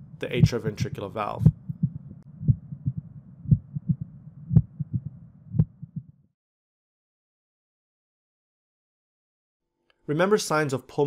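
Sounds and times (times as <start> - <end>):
faint heart clicks: 0.0 - 6.3
loud heartbeat: 0.0 - 6.3
low rumbling heart murmur: 0.0 - 6.3.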